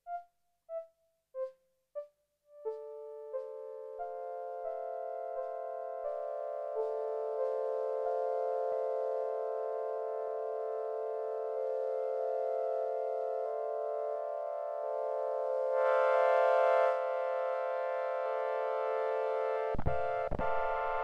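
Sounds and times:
synthesizer sustained chords: 0:02.6 - 0:21.0.

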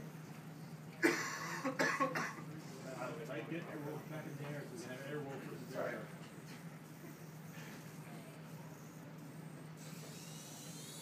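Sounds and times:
person coughing: 0:01.0 - 0:02.5.

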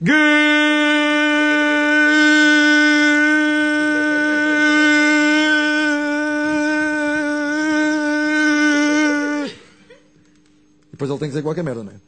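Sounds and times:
man shouting into a microphone: 0:00.0 - 0:09.6.

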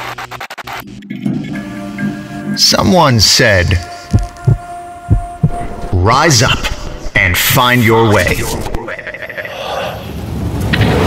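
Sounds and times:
heartbeat thumps: 0:04.1 - 0:07.2.

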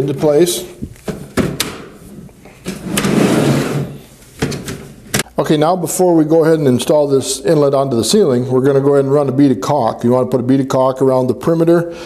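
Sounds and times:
plastic sliding scrape: 0:02.6 - 0:04.0.

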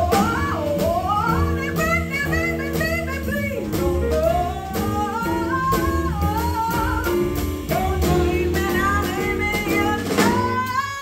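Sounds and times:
drum kit: 0:00.0 - 0:11.0
piano: 0:00.0 - 0:11.0
upright double bass: 0:00.0 - 0:11.0
woman singing jazz: 0:00.0 - 0:11.0.

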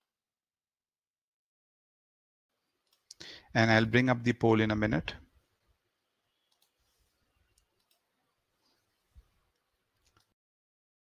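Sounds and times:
faint short clicks: 0:06.5 - 0:06.8.

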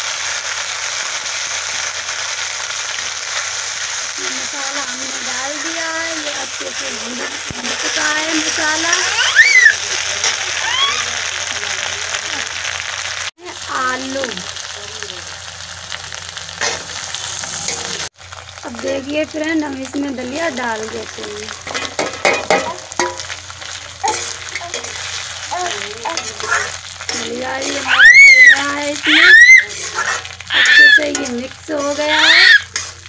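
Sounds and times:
spices sizzling in oil: 0:00.0 - 0:33.0
metal spatula scraping pan: 0:04.8 - 0:09.2, 0:21.6 - 0:33.0
high-pitched voice: 0:07.6 - 0:09.8, 0:25.5 - 0:32.6.

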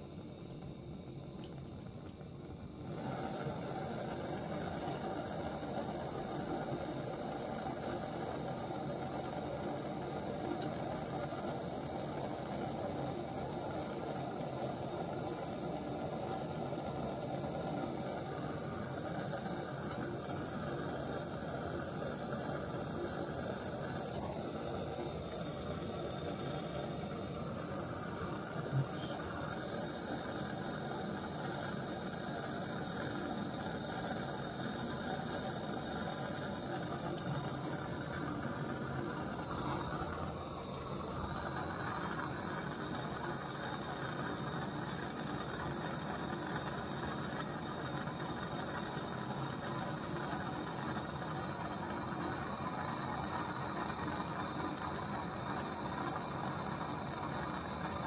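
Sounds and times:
gas blowtorch hissing: 0:00.0 - 0:58.0.

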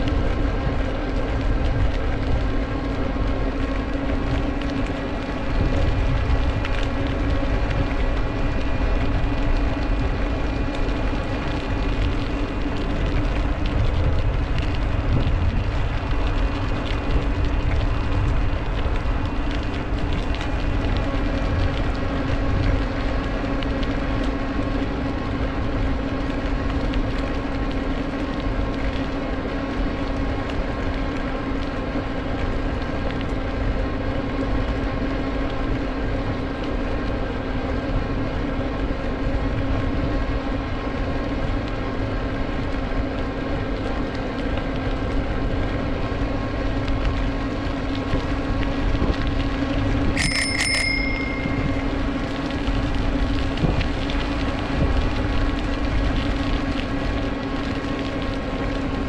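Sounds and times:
steady hum: 0:00.0 - 0:31.0, 0:43.8 - 0:59.0
wind and tyre noise: 0:00.0 - 0:59.0
bicycle bell ringing: 0:50.2 - 0:52.4.

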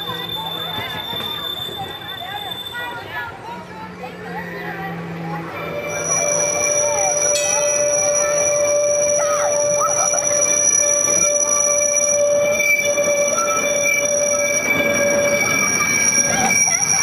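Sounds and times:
tram wheels squealing: 0:00.0 - 0:17.0
tram running gear rumble: 0:07.0 - 0:17.0.

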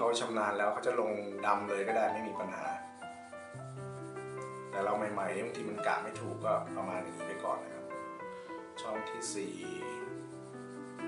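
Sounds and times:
background music with held notes: 0:00.0 - 0:11.0
blending tool rubbing on paper: 0:00.0 - 0:11.0.

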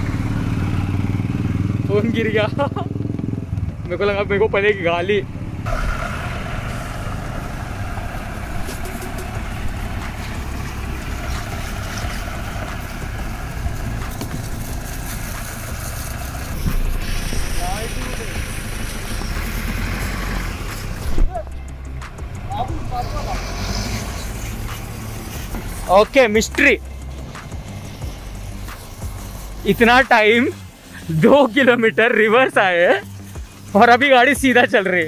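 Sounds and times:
road and wind noise: 0:00.0 - 0:35.0
vehicle engine: 0:00.0 - 0:35.0.

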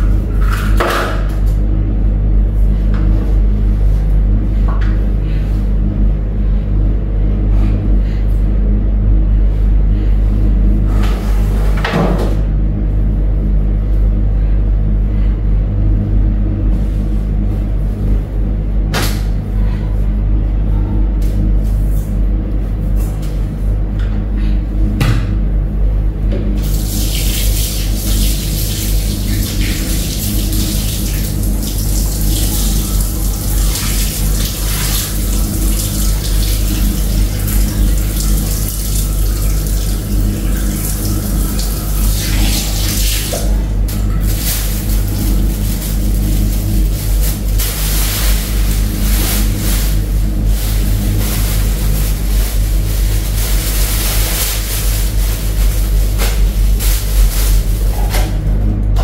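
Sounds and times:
water splashing in a sink: 0:26.6 - 0:50.0.

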